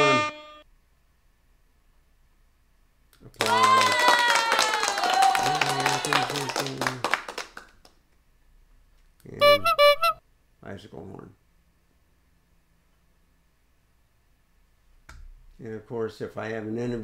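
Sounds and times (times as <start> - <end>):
short sound effects: 0.0 - 0.6.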